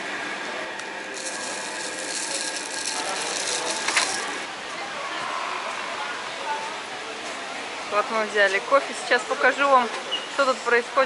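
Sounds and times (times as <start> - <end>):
stir stick scraping paper cup: 1.2 - 4.5.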